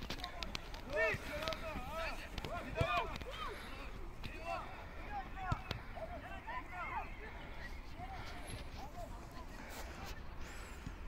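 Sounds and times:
distant players shouting: 0.3 - 8.6.

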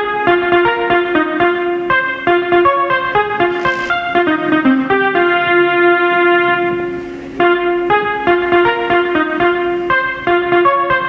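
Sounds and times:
held keyboard chord: 0.0 - 11.0
quick keyboard notes: 0.0 - 11.0.

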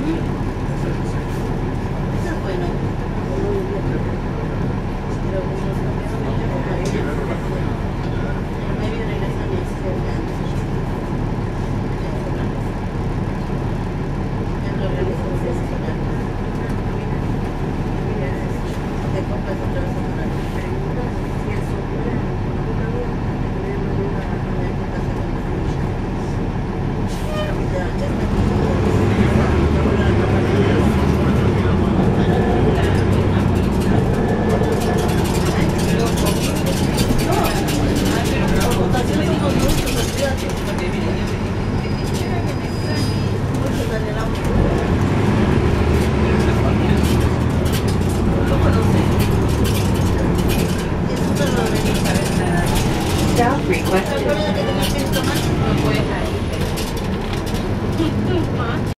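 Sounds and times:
bus diesel engine running: 0.0 - 58.9
road noise: 0.0 - 58.9.

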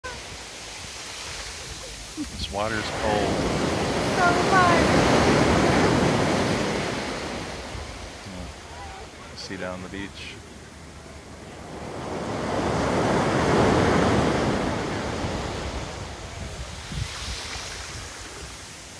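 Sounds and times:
ocean surf breaking on beach: 0.0 - 18.9.

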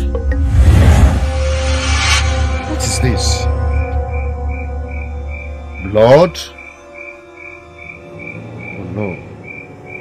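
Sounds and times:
background music chords: 0.0 - 10.0.

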